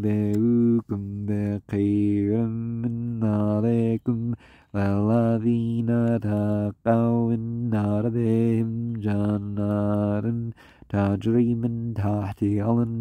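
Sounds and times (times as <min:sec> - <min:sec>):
man reciting melodic chant: 0:00.0 - 0:13.0.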